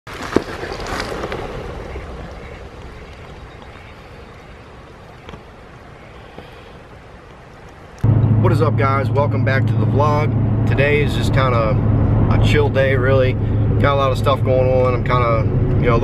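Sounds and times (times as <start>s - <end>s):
steady outdoor noise: 0.1s - 16.0s.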